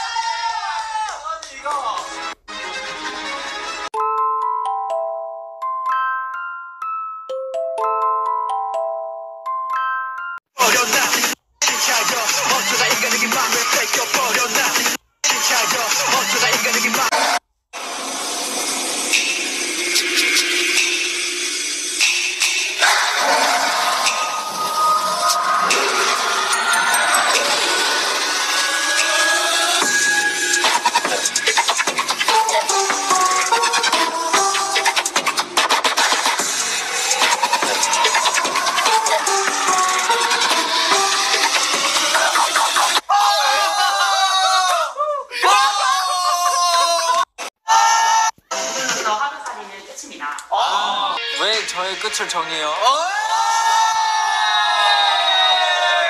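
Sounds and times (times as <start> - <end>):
young men screaming and yelling: 0.0 - 1.2, 22.8 - 31.4, 36.7 - 40.9, 43.0 - 48.4, 52.8 - 56.0.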